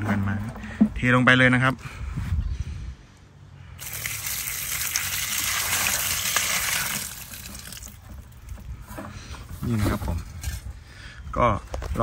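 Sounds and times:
water pouring into a bucket: 0:03.8 - 0:08.7.

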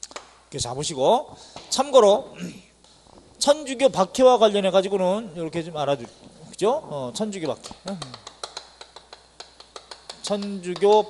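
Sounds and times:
chalk tapping on a chalkboard: 0:07.4 - 0:11.0.

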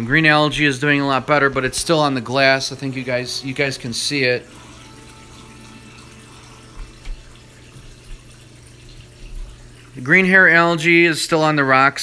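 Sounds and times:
aquarium water trickling: 0:00.0 - 0:12.0.

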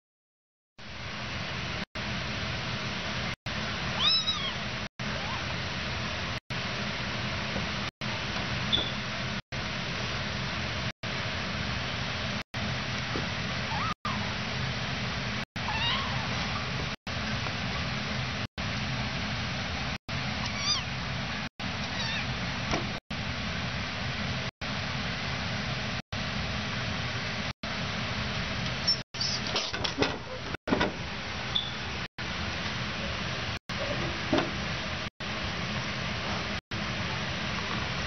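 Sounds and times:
kitten mewing: 0:03.9 - 0:05.5, 0:13.7 - 0:14.4, 0:15.6 - 0:16.7, 0:20.4 - 0:20.9, 0:21.8 - 0:22.3.

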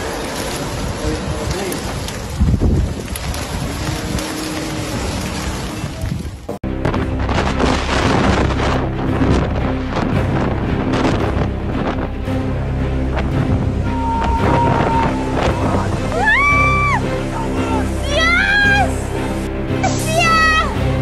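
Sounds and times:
wind buffeting microphone: 0:00.0 - 0:17.6
surf: 0:00.0 - 0:21.0
music: 0:06.5 - 0:21.0.

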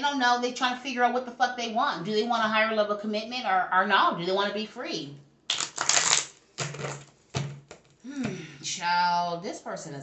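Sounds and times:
cards snapping: 0:05.5 - 0:07.1.

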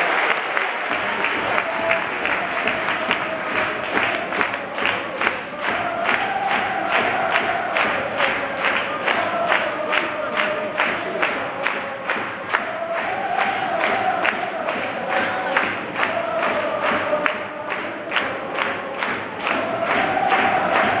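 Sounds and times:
crowd chanting to a beat: 0:00.0 - 0:21.0.

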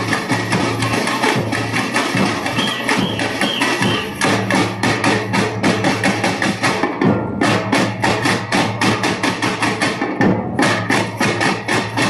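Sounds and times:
samba band drums and percussion: 0:00.0 - 0:12.0.

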